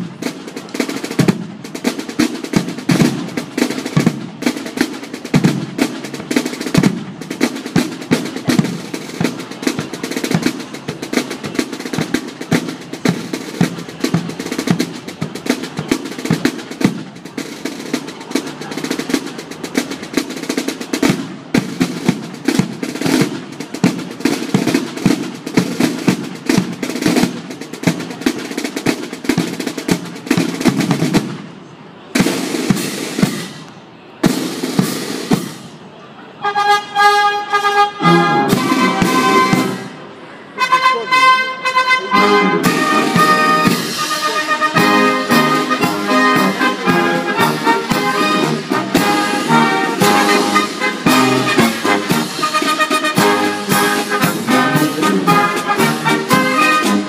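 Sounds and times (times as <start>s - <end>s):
snare drums playing rapidly: 0.0s - 31.4s, 32.2s - 33.6s, 34.2s - 35.7s, 38.0s - 39.9s, 42.6s - 57.0s
drum rolls: 0.0s - 36.0s, 38.0s - 40.2s, 42.2s - 57.0s
brass playing: 36.4s - 57.0s.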